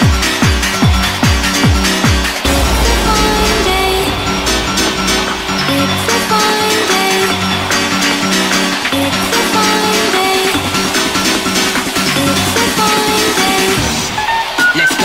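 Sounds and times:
deep sustained bass note: 2.4s - 7.0s.

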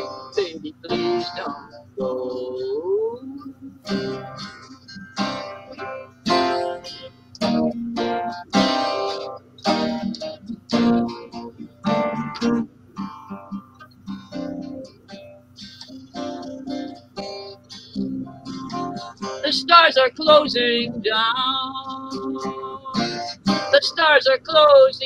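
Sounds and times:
acoustic guitar strumming: 0.0s - 25.0s.

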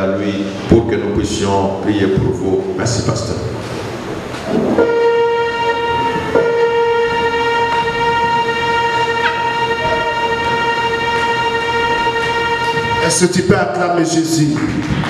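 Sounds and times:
steady pitched tone: 3.9s - 14.4s.

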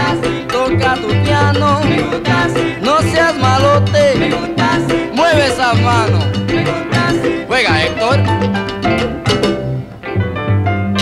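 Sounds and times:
instrumental salsa band music: 0.0s - 11.0s.

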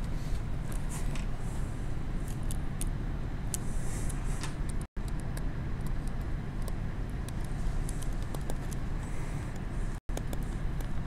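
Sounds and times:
low room hum: 0.0s - 11.0s
stylus clicking and scratching: 2.2s - 11.0s.

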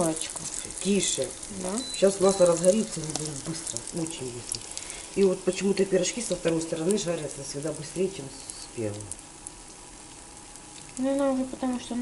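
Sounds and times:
dough frying in oil: 0.0s - 12.0s
faint crackles: 0.0s - 12.0s.

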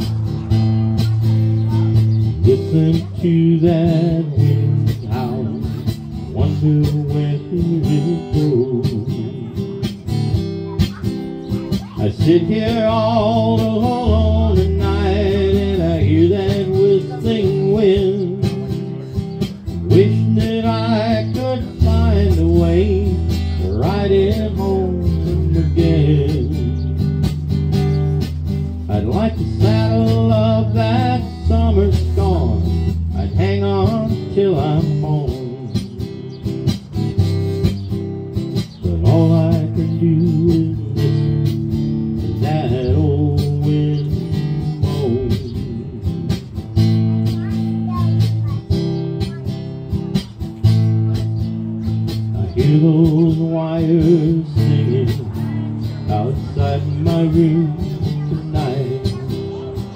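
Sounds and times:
acoustic guitar strummed: 0.0s - 59.9s
held low notes: 0.0s - 59.9s.

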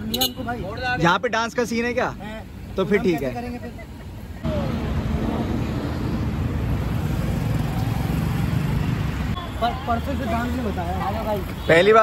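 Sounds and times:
car and street traffic rumble: 0.0s - 12.0s.

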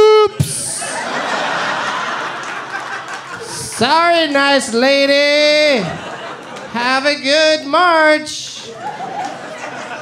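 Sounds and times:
audience laughing: 0.5s - 4.8s, 5.4s - 7.2s, 8.5s - 10.0s.

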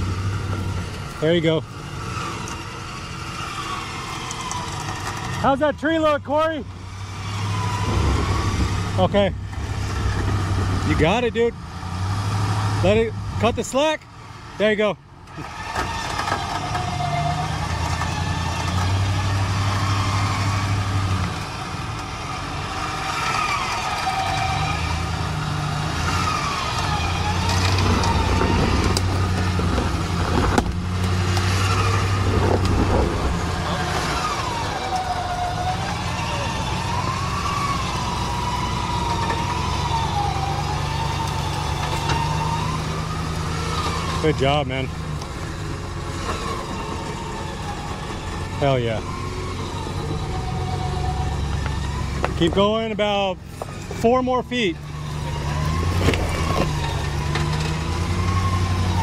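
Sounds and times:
truck engine at low speed: 0.0s - 59.0s.

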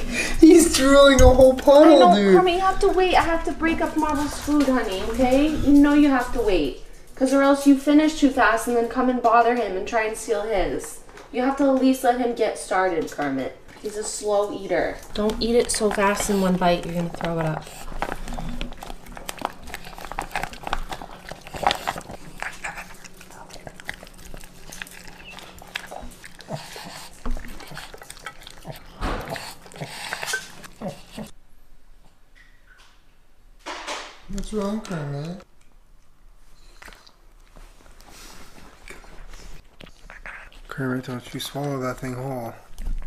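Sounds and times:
dog licking and chewing food: 0.0s - 9.8s, 12.8s - 31.4s, 36.0s - 43.0s.

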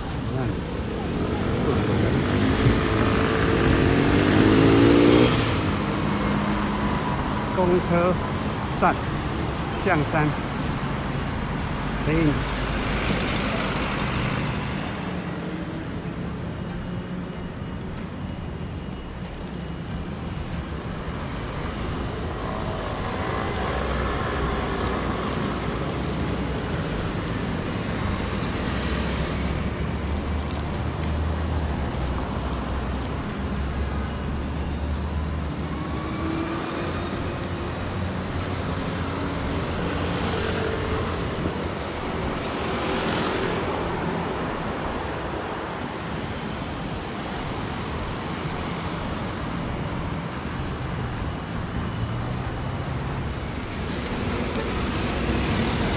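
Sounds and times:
cars driving past: 0.0s - 17.8s, 18.5s - 55.9s.

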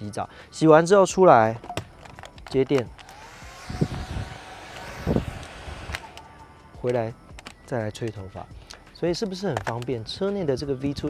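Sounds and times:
hair dryer running: 3.0s - 6.8s.

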